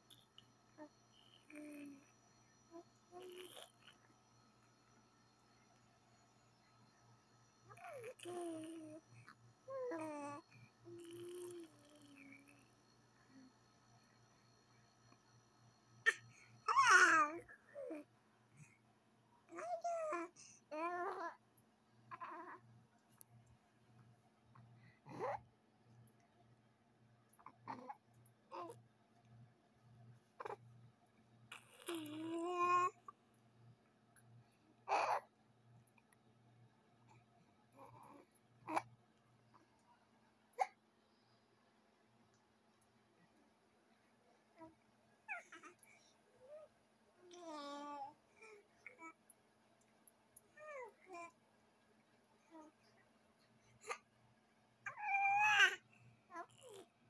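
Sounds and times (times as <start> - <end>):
baby cooing: 1.2 - 2.1, 2.7 - 4.0, 7.7 - 12.6, 16.1 - 18.1, 19.5 - 21.4, 22.1 - 22.6, 27.4 - 28.8, 31.5 - 33.0, 45.3 - 45.8, 47.3 - 49.2, 50.6 - 51.3, 54.9 - 56.8.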